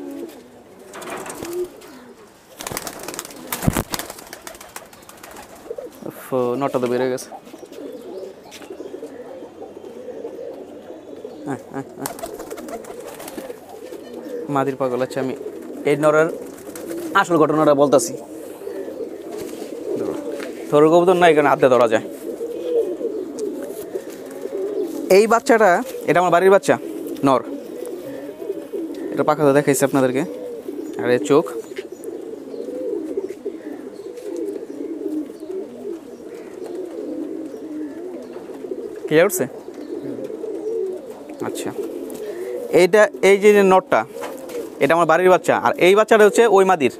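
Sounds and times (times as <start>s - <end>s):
pigeons cooing: 0.0s - 46.9s.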